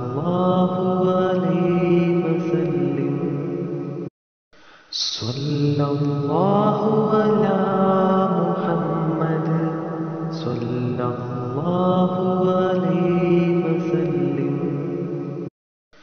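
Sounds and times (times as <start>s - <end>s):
person chanting long held notes: 0.0s - 3.6s.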